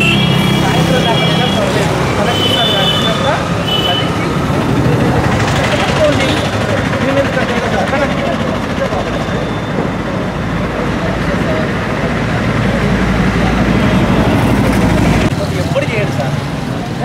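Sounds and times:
indistinct voices talking: 0:00.0 - 0:17.0
roadside traffic noise: 0:00.0 - 0:17.0.

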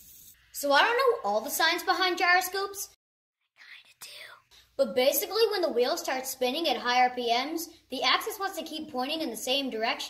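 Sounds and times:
person whispering breathily: 0:03.6 - 0:04.7.

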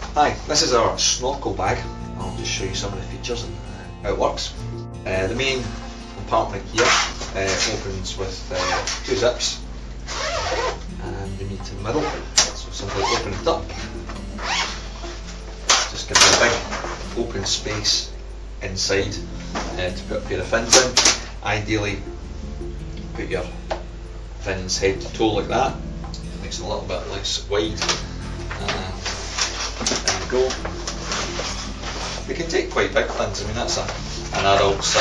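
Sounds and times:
steady low hum: 0:00.0 - 0:35.0
fabric and rubber fins rustling: 0:05.1 - 0:18.2, 0:26.7 - 0:35.0
zip being pulled open: 0:08.5 - 0:09.2, 0:10.1 - 0:10.9, 0:12.0 - 0:15.2.

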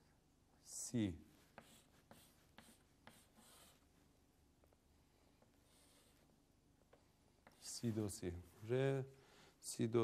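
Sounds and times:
chalk strokes on chalkboard: 0:01.3 - 0:03.9, 0:05.6 - 0:06.3.

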